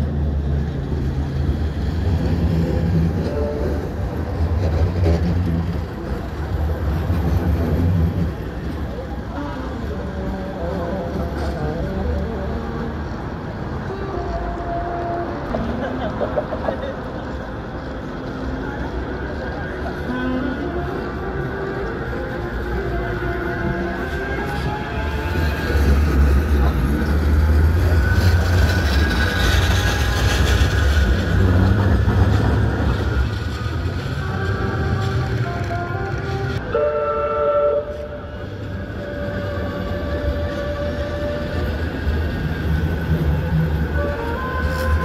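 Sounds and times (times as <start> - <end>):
tram rumbling past: 0.0 - 45.0
horn-like tone: 34.3 - 38.4.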